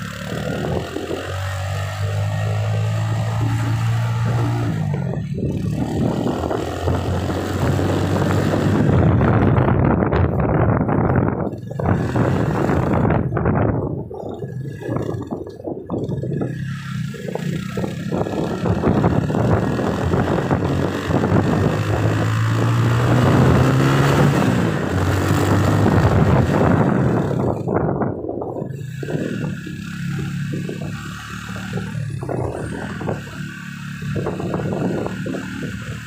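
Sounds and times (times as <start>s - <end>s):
car engine hum: 0.0s - 36.0s
road noise rushing: 0.0s - 36.0s.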